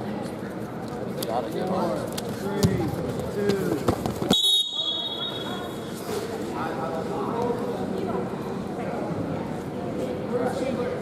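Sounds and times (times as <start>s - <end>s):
shrill high-pitched signal tone: 4.3s - 5.9s.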